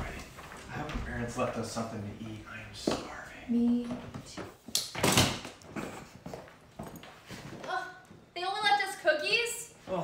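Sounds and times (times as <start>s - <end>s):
soft footsteps on hard floor: 6.2s - 8.3s.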